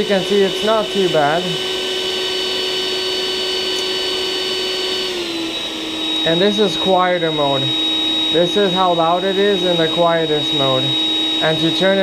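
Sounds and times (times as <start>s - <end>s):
vacuum motor whine: 0.0s - 12.0s.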